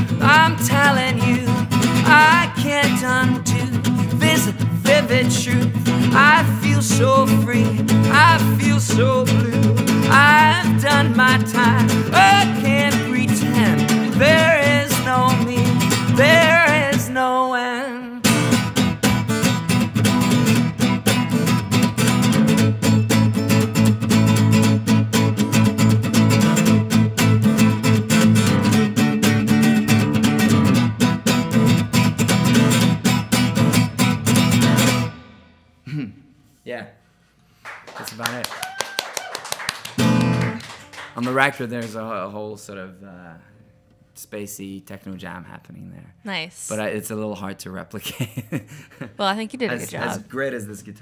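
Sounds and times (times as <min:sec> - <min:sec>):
acoustic guitar strumming: 0:00.0 - 0:35.8, 0:39.9 - 0:42.0
person talking: 0:45.7 - 0:48.0, 0:49.2 - 0:51.0.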